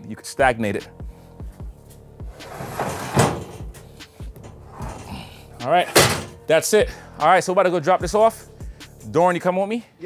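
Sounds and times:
background music: 0:00.0 - 0:10.0
metal ramp scraping and rattling: 0:02.3 - 0:06.4.

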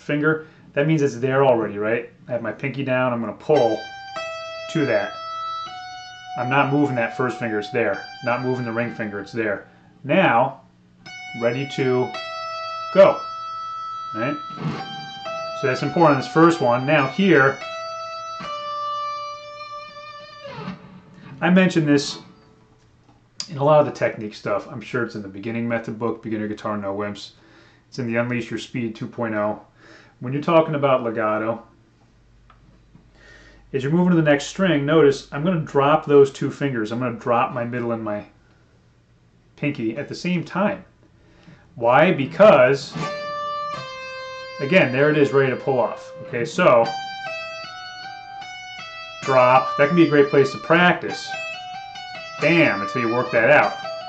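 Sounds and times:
electric guitar sustained note: 0:03.5 - 0:10.0, 0:11.0 - 0:22.6, 0:42.0 - 0:54.0.

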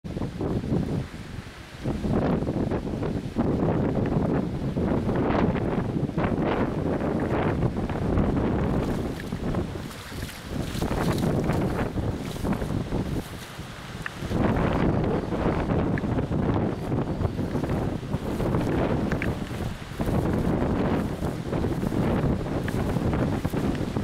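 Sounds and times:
gusty wind buffeting microphone: 0:00.0 - 0:24.0.

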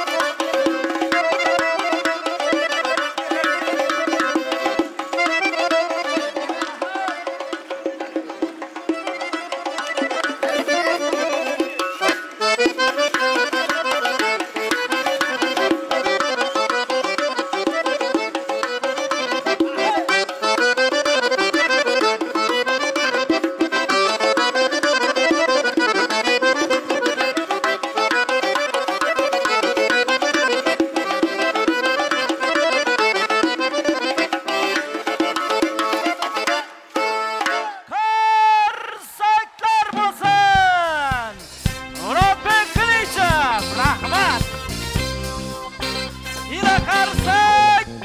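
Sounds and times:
folk-pop band playing dance music: 0:00.0 - 0:48.0
frame drum beats: 0:39.8 - 0:48.0.

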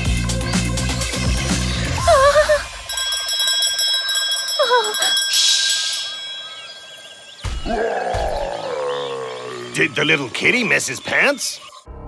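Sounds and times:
high ringing tone: 0:02.8 - 0:07.6.

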